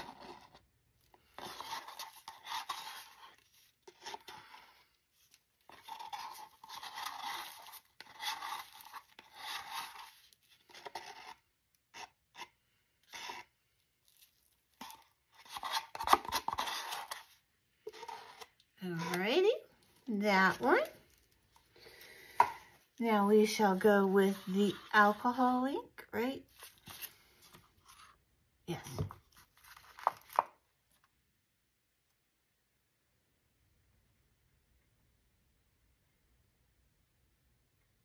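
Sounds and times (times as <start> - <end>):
stir stick scraping a paper cup: 0.0 - 19.6, 23.4 - 25.6.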